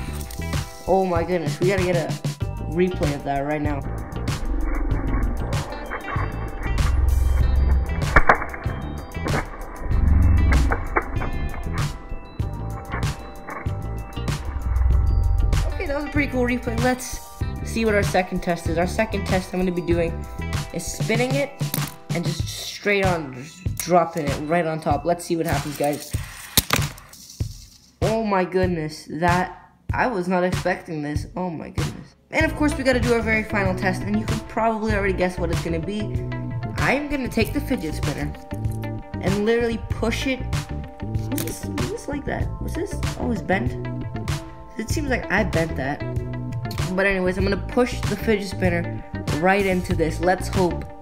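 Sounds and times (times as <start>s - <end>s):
background music with steady beat: 0.0s - 51.0s.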